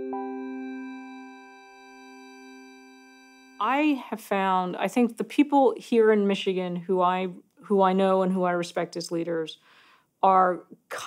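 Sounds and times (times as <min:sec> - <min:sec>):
held synthesizer chord: 0:00.0 - 0:03.8.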